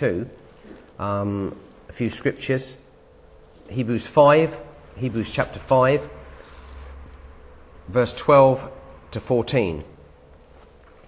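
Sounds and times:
man speaking: 0.0 - 0.4, 1.0 - 2.9, 3.7 - 6.3, 7.9 - 10.0
faint low hum: 0.0 - 11.0.

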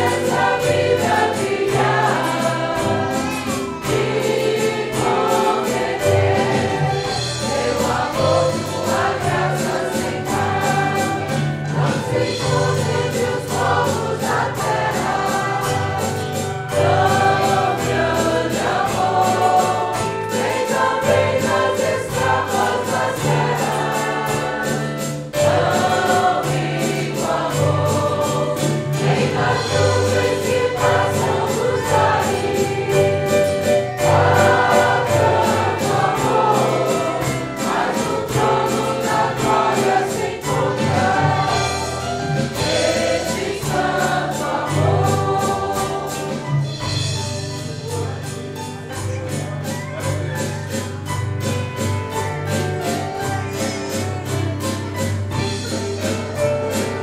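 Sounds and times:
church choir singing a hymn: 0.0 - 48.2
band with guitars bass and drums: 0.0 - 57.0.

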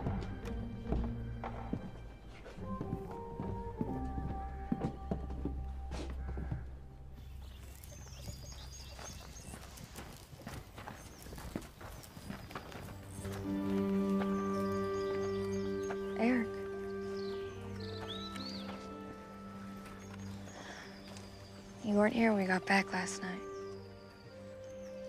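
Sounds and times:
film score music: 0.0 - 8.2, 12.8 - 25.0
horse hooves clip-clopping: 0.0 - 25.0.

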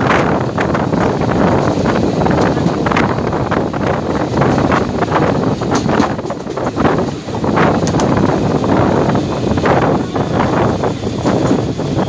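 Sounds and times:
train running noise: 0.0 - 12.0
wind rushing over microphone: 0.0 - 12.0.

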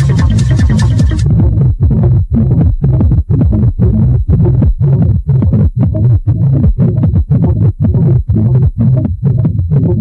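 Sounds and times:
techno with pulsing bass: 0.0 - 10.0.

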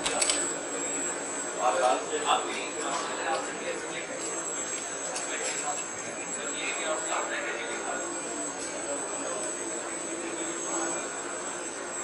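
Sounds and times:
steady high-pitched whine: 0.0 - 12.0.

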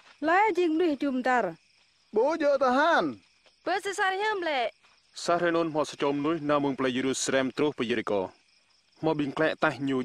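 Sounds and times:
man talking: 5.2 - 8.3, 9.0 - 10.0.

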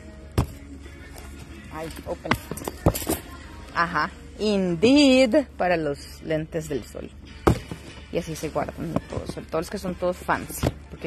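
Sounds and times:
background music: 0.0 - 11.0
person speaking: 1.7 - 2.6
knock of cardboard box: 7.5 - 7.8.

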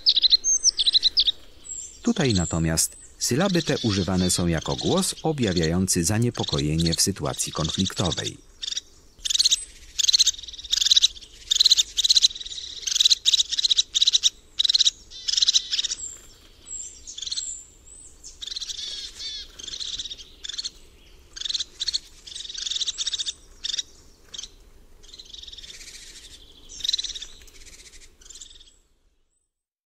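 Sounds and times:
thin high bird whistles: 0.0 - 1.6
bird bubbling trilled calls: 0.0 - 16.0.

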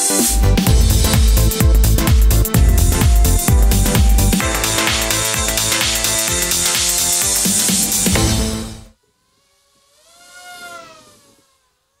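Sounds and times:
model aircraft motor whine: 5.2 - 12.0.

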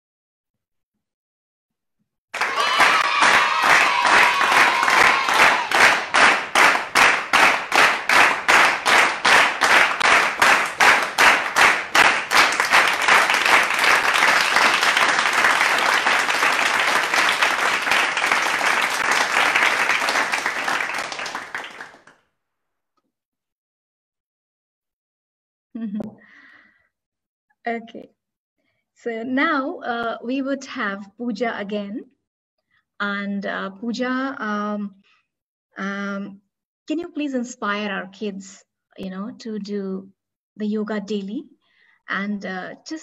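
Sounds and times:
crowd applause: 2.4 - 22.1
rhythmic clapping: 2.4 - 22.2.

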